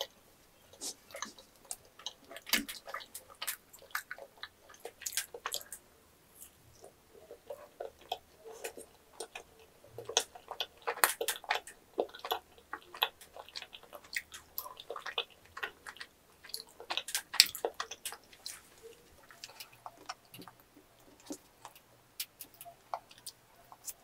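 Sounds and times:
chewing mouth clicks: 0.7s - 5.8s, 6.4s - 24.0s.

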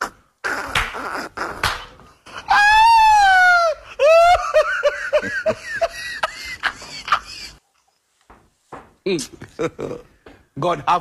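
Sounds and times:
rising whoop: 2.5s - 4.4s
person laughing: 3.6s - 7.6s.

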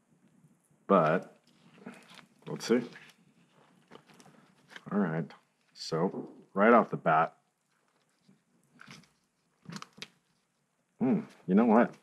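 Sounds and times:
faint rubbing of mold: 0.9s - 6.6s, 7.5s - 12.0s.

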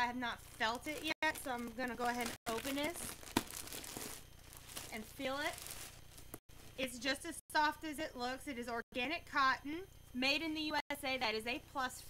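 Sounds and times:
plastic packaging crinkling: 0.0s - 6.4s.

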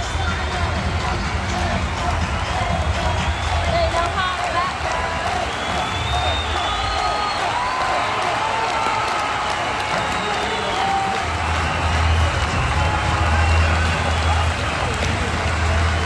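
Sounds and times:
music over loudspeakers: 0.0s - 8.5s, 9.6s - 16.0s
stadium crowd cheering: 0.0s - 16.0s.

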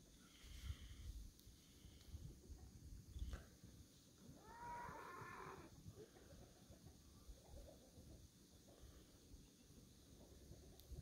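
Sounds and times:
distant horse whinnying: 4.4s - 5.7s.

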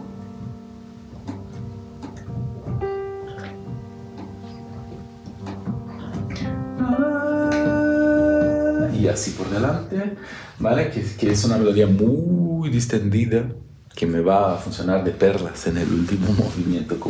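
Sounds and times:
soft piano chords: 0.0s - 17.0s.

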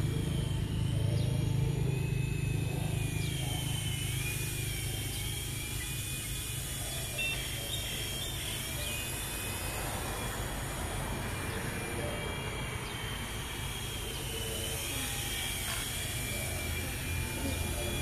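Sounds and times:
low engine rumble: 0.0s - 18.0s
thin high whine: 0.0s - 18.0s.

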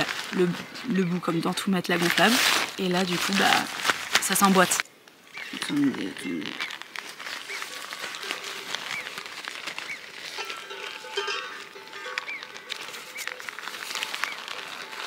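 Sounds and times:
nylon fabric rustling and crinkling: 0.0s - 15.0s.

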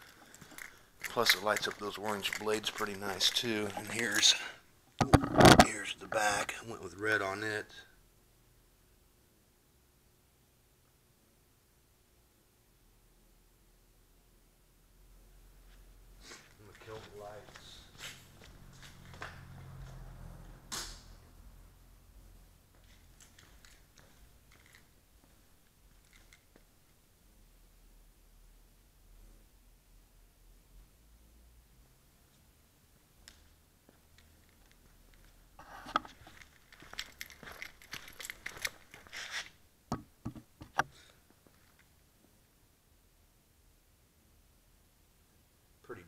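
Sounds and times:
low electrical hum: 0.0s - 46.0s
camera handling rustling and scraping: 0.2s - 4.4s, 5.0s - 5.7s, 35.6s - 39.6s.

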